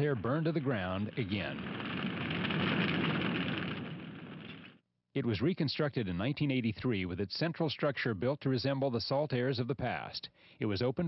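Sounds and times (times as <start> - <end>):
flames rushing: 0.0 - 4.8.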